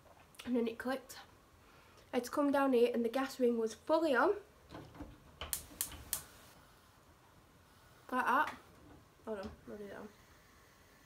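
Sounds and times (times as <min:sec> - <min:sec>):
light sharp clicks: 0:05.5 - 0:06.3.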